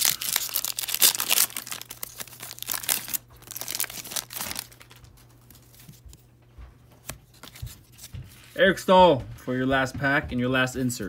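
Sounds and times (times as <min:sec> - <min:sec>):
wrapper torn and crinkled: 0:00.0 - 0:05.8
faint handling of cards: 0:00.0 - 0:11.0.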